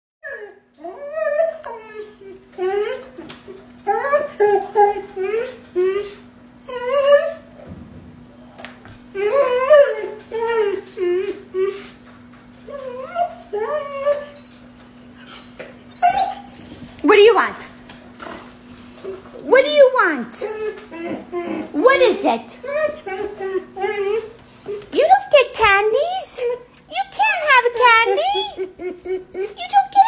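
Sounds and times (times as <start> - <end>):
dog whining: 0.2 - 7.6, 9.0 - 17.5, 18.1 - 30.0.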